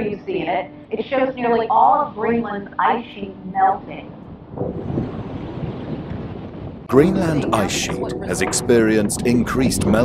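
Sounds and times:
wind-like rushing noise: 3.7 - 8.0.

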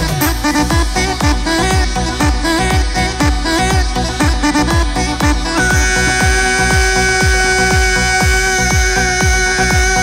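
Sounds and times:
deep kick drums: 0.0 - 10.0
sustained electronic note: 5.3 - 10.0.

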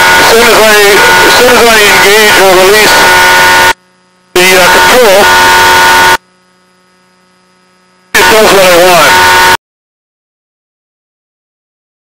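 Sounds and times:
faint steady hum: 0.0 - 9.6.

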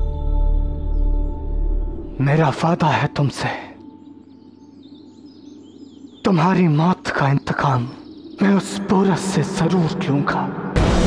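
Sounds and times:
open-air ambience: 0.0 - 10.8
faint bird chirps: 0.8 - 10.7.

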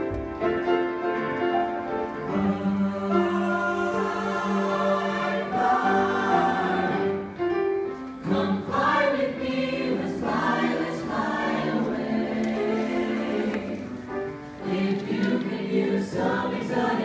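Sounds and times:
mixed voices singing close harmony: 2.2 - 7.4, 8.2 - 17.0.

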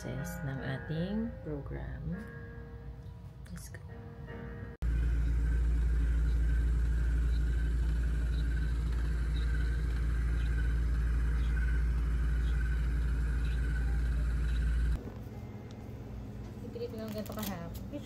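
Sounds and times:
faint wavering whine: 4.8 - 16.8
massage machine humming: 4.8 - 18.0.

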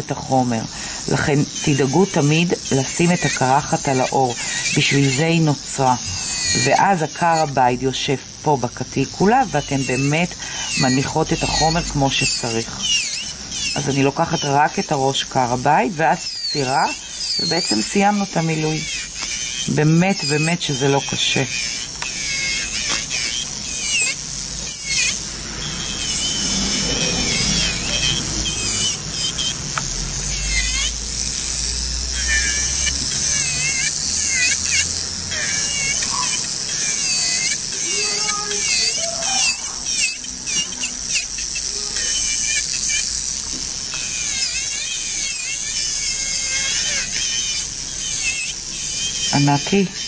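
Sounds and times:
electric nail drill whining: 0.0 - 50.0.

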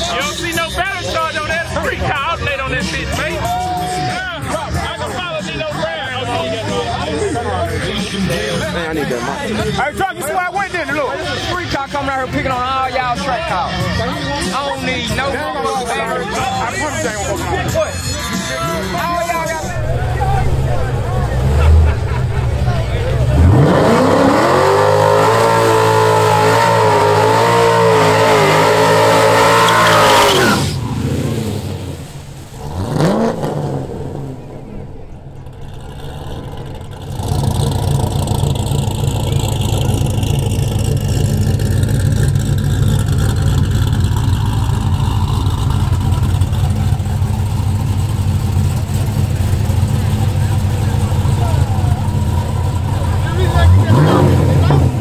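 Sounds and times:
car engine idling: 0.0 - 55.0
car engine revving: 18.9 - 55.0.

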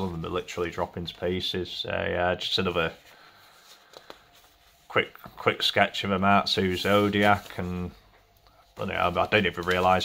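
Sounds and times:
man talking: 0.0 - 3.1, 4.8 - 10.0
paper handling sounds: 2.5 - 10.0.

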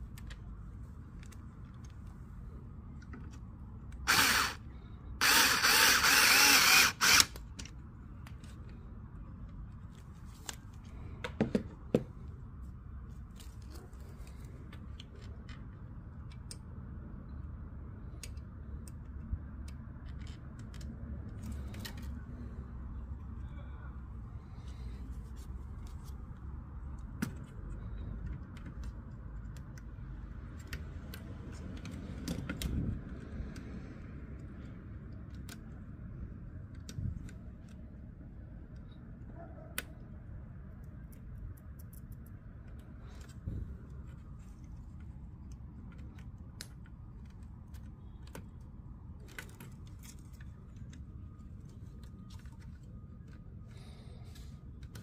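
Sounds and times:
hands handling electronics parts: 0.0 - 16.8, 40.7 - 55.0.

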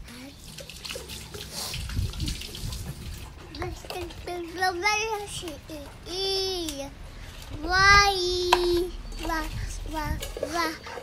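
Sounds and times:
toddler babbling: 3.6 - 6.9, 7.6 - 11.0.

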